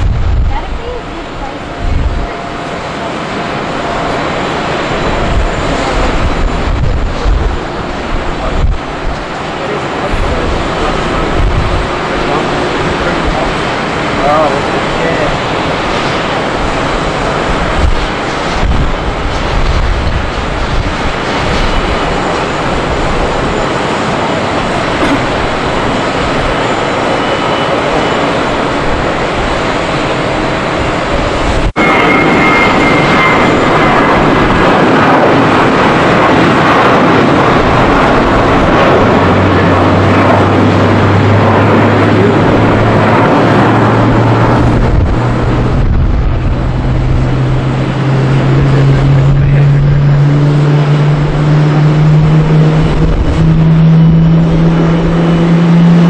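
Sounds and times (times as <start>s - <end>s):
jet engine roar: 0.0s - 56.0s.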